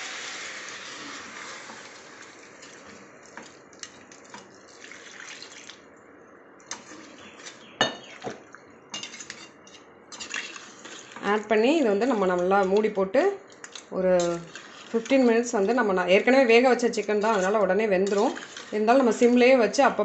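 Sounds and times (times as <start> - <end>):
liquid hissing in a hot pot: 0.0 - 2.6.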